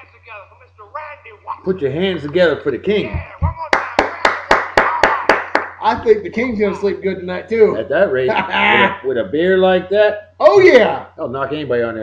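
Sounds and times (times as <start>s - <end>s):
hands clapping: 3.1s - 6.1s.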